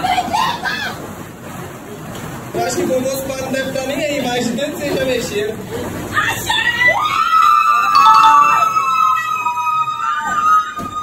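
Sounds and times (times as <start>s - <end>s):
women shrieking high-pitched: 6.2s - 11.0s.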